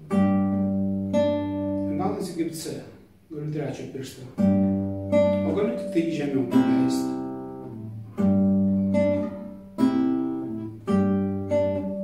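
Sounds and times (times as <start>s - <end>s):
acoustic guitar plucked: 0.0s - 12.0s.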